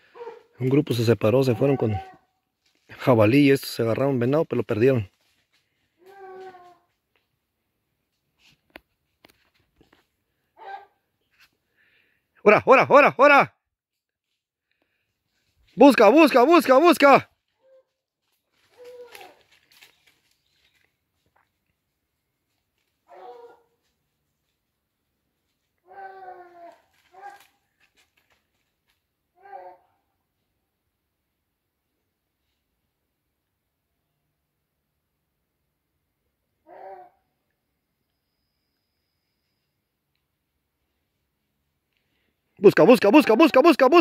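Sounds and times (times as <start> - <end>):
dog baying: 0.0 - 0.5, 23.1 - 23.8
distant dog cry: 0.0 - 0.6, 10.6 - 11.0, 23.1 - 23.8, 36.6 - 37.3.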